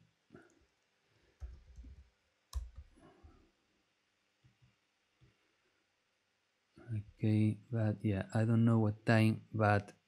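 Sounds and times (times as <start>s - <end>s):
faint keyboard typing: 0.4s - 3.4s.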